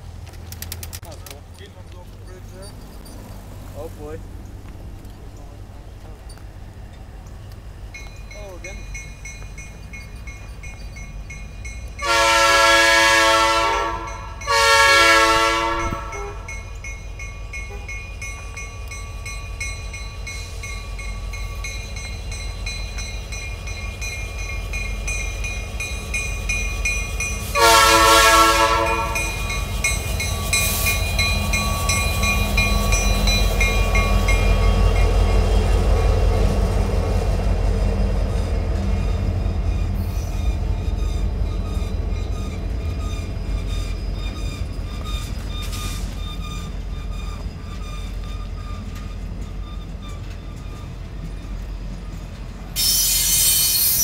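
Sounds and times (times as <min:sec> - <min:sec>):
locomotive engine: 0:00.0 - 0:54.0
train wheels rumbling: 0:00.0 - 0:54.0
diesel locomotive horn blasts: 0:12.0 - 0:16.8, 0:17.6 - 0:18.0, 0:27.4 - 0:33.0.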